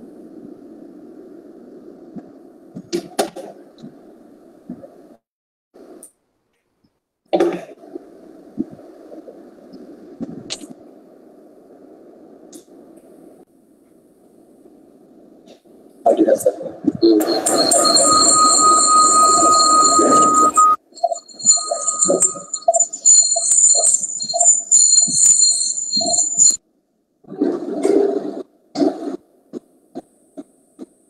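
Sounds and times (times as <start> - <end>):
distorted open microphone noise: 7.7 - 26.6
high whistling tones: 17.0 - 26.6.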